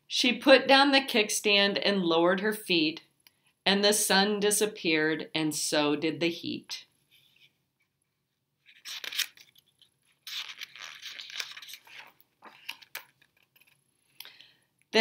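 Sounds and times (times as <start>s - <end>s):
book page turning: 8.6s - 13.8s.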